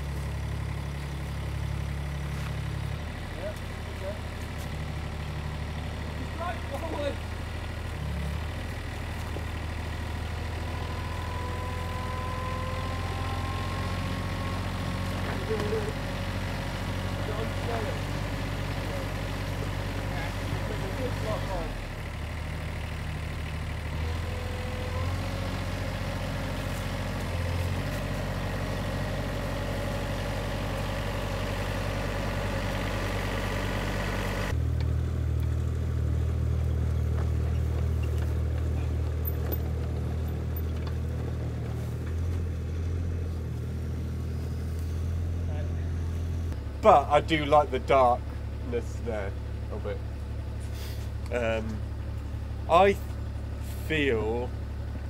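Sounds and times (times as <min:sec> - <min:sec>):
tractor engine running: 0:00.0 - 0:55.0.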